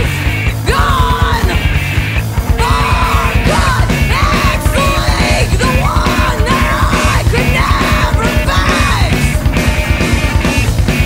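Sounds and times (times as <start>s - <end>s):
distorted guitars: 0.0s - 11.0s
driving drums: 0.0s - 11.0s
high wailing line: 2.4s - 10.8s.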